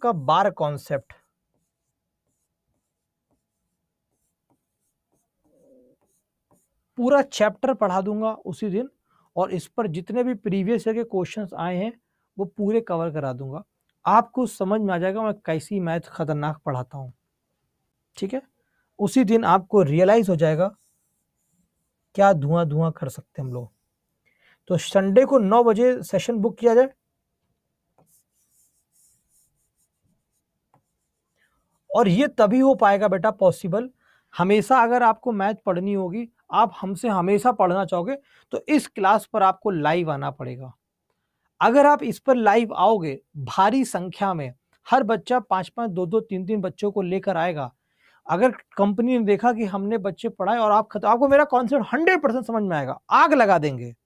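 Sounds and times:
pen scratching on whiteboard: 0.8s - 6.8s, 20.6s - 22.2s, 28.0s - 31.3s.

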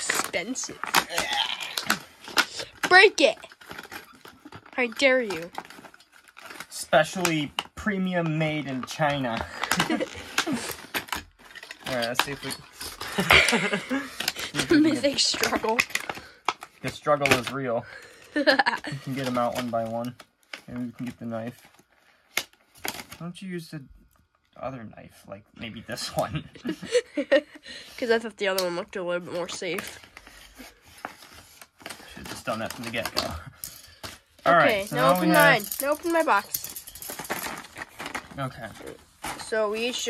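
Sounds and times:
plastic packaging clicking and crackling: 0.0s - 23.3s, 28.4s - 40.0s.

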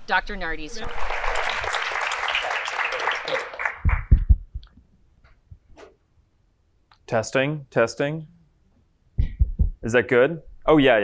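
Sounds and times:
audience applause: 0.8s - 4.3s
microphone handling thumps: 3.8s - 6.0s, 9.2s - 9.9s.

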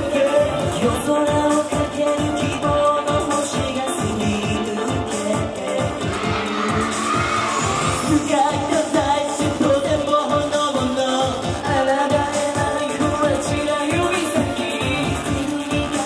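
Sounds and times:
backing track with driving beat: 0.0s - 16.0s
male group singing pop song: 0.0s - 16.0s.

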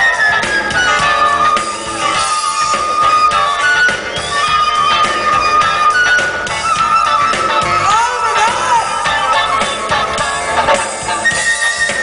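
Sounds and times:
funk band playing live: 0.0s - 12.0s.

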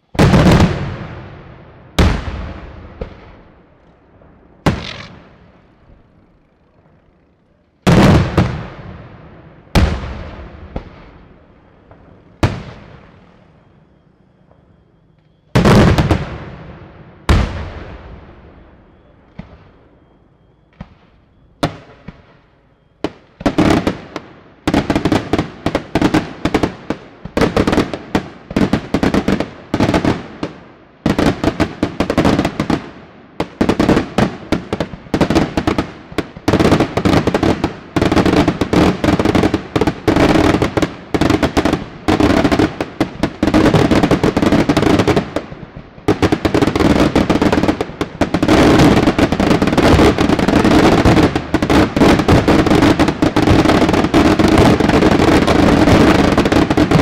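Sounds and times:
fireworks bangs: 0.0s - 57.0s.

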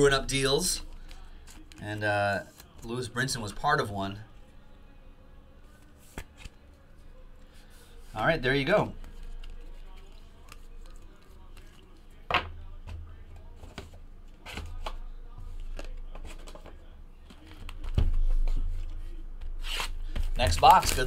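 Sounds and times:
handling trading cards: 0.8s - 3.0s, 5.6s - 12.3s, 13.4s - 21.0s.

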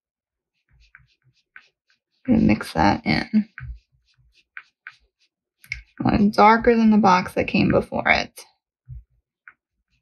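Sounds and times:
paintbrush tapping on paper: 0.6s - 7.8s.

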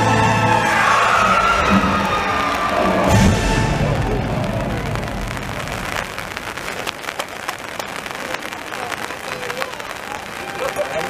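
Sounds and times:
orchestral show music: 0.0s - 6.0s
crowd cheering and applauding: 0.0s - 11.0s
deep boom: 1.5s - 6.8s.

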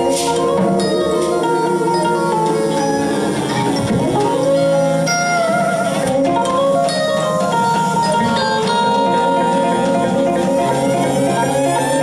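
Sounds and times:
electric guitar notes: 0.0s - 12.0s.

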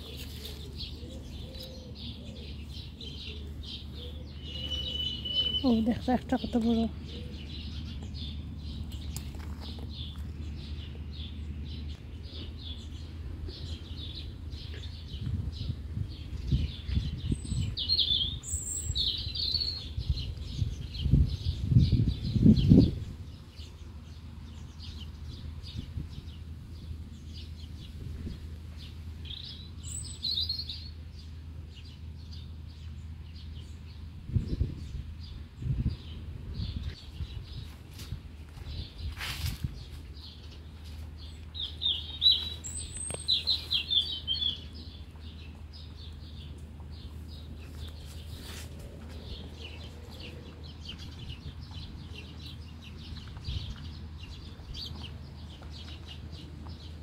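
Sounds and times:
small birds chirping: 0.0s - 57.0s.

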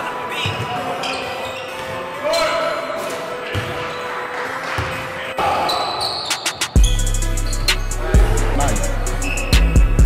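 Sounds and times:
music with heavy bass drum: 6.8s - 10.0s.

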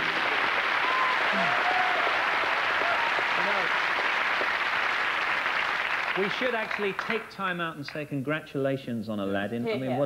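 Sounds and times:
audience applauding: 0.0s - 7.6s.

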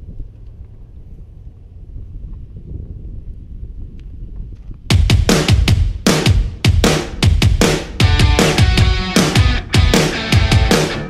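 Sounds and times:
wind buffeting microphone: 0.0s - 8.0s
music with hard drum hit: 4.9s - 11.0s.

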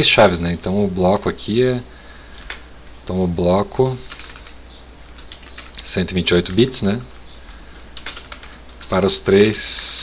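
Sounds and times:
computer keyboard typing: 2.4s - 2.6s, 4.0s - 4.6s, 5.2s - 5.9s, 7.4s - 9.0s.

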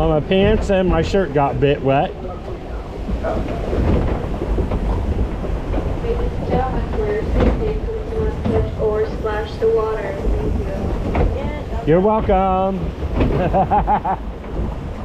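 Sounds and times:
voices: 0.0s - 4.2s, 5.9s - 14.2s
boat rumbling and clattering: 0.0s - 15.0s
wind on microphone: 0.0s - 15.0s.

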